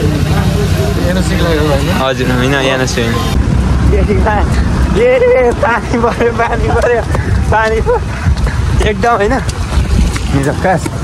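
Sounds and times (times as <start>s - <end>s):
wind buffeting microphone: 3.3s - 11.0s.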